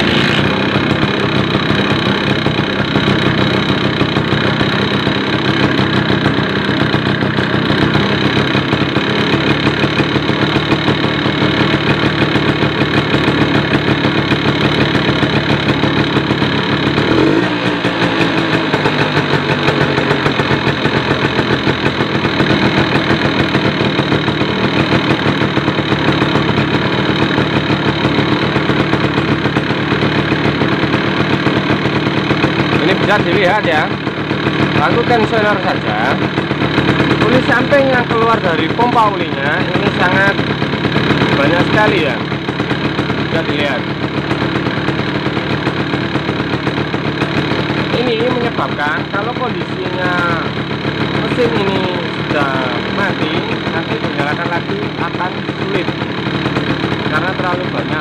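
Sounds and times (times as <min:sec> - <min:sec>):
two-stroke engine idling: 0:00.0 - 0:58.0.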